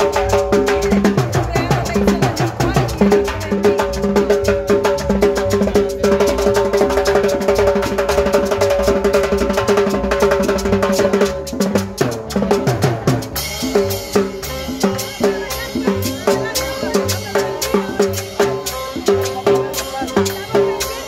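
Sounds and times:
drum kit and percussion: 0:00.0 - 0:21.0
held instrument notes: 0:00.0 - 0:21.0.

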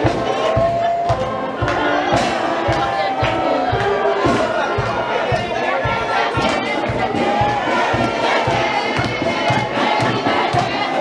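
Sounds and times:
crowd cheering and shouting: 0:00.0 - 0:11.0
drum beat: 0:00.0 - 0:11.0
marching band playing: 0:00.0 - 0:11.0.

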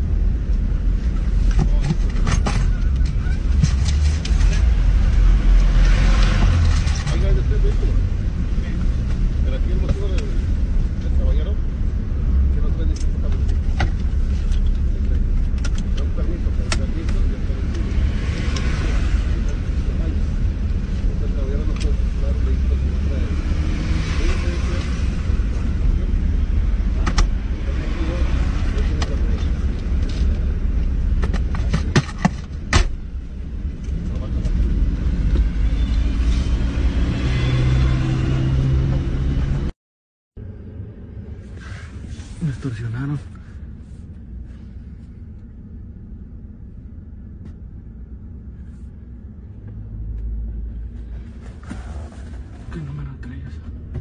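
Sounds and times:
knocks and clicks of rummaging: 0:31.2 - 0:33.0.

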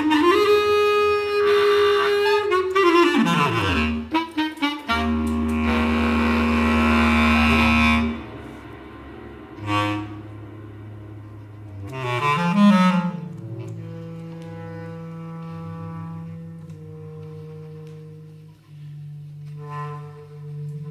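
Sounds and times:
solo bass clarinet: 0:00.0 - 0:20.9.

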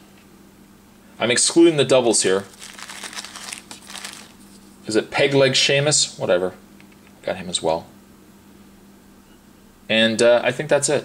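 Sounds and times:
packaging crinkling and rustling: 0:02.2 - 0:04.7.

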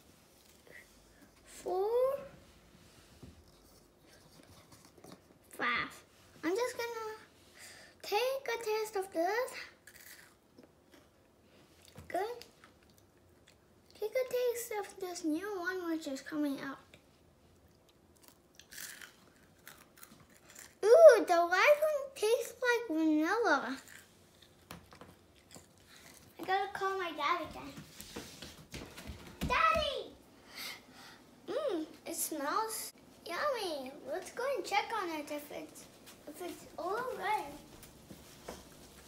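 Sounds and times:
child's voice: 0:01.5 - 0:02.4, 0:05.5 - 0:07.3, 0:08.0 - 0:09.8, 0:12.1 - 0:12.5, 0:14.0 - 0:16.9, 0:20.8 - 0:23.9, 0:26.4 - 0:27.8, 0:29.4 - 0:30.2, 0:31.5 - 0:37.7
child counting: 0:01.6 - 0:02.3, 0:29.4 - 0:30.2, 0:31.5 - 0:37.7
child chewing crisp wafer: 0:09.8 - 0:12.0, 0:12.6 - 0:14.0, 0:17.5 - 0:20.9, 0:23.7 - 0:26.4.

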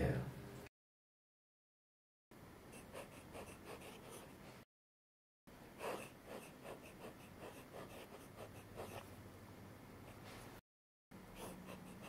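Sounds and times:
fountain pen scratching paper: 0:02.8 - 0:04.3, 0:05.8 - 0:09.1, 0:11.4 - 0:12.0.

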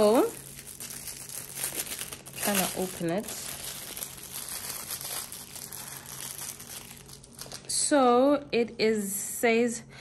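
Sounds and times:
plastic bag crinkling: 0:00.0 - 0:07.8.

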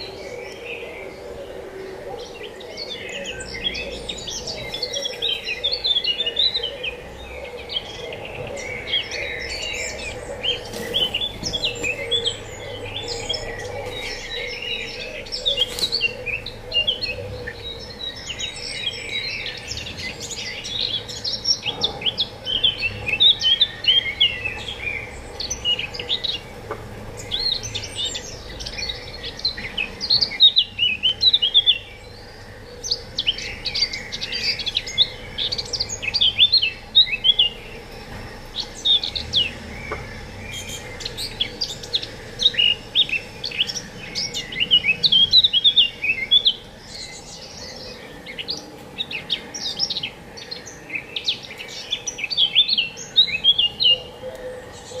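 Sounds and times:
songbird twittering: 0:00.0 - 0:55.0.

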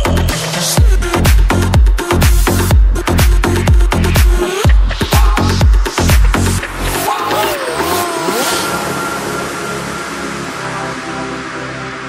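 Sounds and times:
background music: 0:00.0 - 0:12.0
motorcycle engine revving: 0:04.6 - 0:10.6.

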